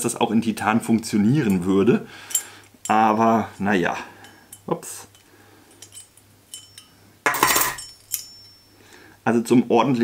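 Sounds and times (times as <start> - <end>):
metal parts clinking: 4.2 - 8.7
metallic clatter: 5.8 - 8.7.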